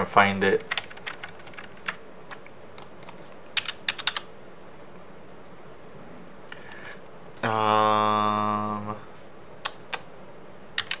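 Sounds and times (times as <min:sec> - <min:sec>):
computer keyboard typing: 0:00.6 - 0:04.3, 0:06.6 - 0:07.2, 0:10.8 - 0:11.0.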